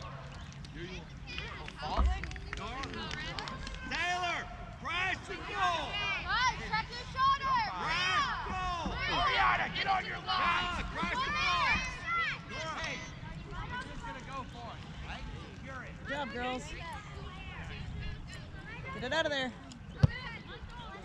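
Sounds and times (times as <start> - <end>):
children shouting: 5.7 - 13.1.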